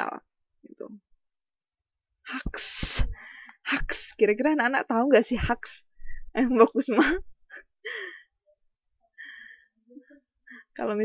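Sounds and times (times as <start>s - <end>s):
breathy gasp or soft laugh: 7.6s - 8.4s, 9.1s - 10.7s.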